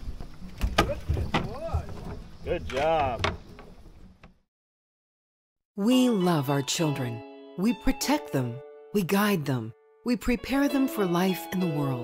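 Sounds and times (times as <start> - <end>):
knocks and thuds on a boat: 0.5 - 4.4.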